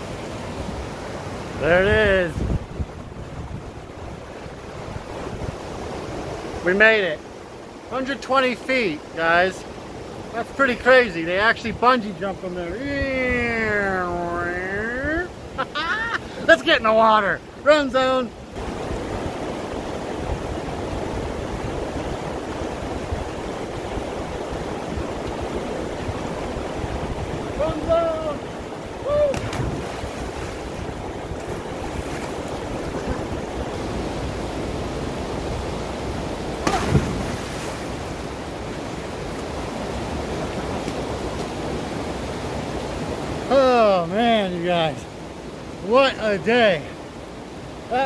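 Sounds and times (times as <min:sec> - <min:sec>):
river cascading into rock pool: 0:16.3 - 0:48.0
person shouting: 0:27.6 - 0:28.4, 0:29.0 - 0:29.4
sudden thump: 0:36.6 - 0:37.4.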